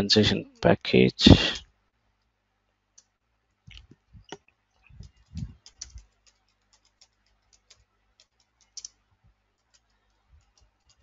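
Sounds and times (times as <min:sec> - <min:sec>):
computer keyboard typing: 0:05.0 - 0:11.0.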